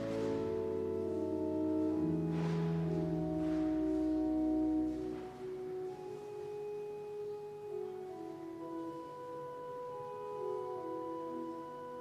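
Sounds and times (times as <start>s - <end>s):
church organ chords: 0.0s - 12.0s.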